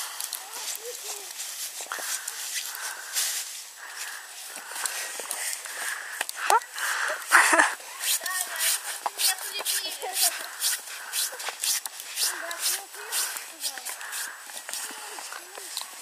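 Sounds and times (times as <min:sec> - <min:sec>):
children talking: 0:00.0 - 0:03.1, 0:04.6 - 0:16.0
footsteps crunching in snow: 0:00.0 - 0:06.2, 0:07.8 - 0:16.0.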